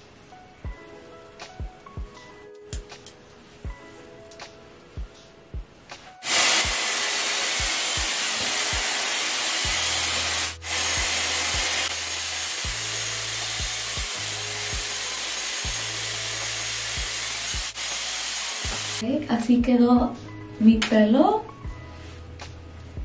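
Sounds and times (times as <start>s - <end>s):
hot-air styler blowing: 6.2s - 19.0s.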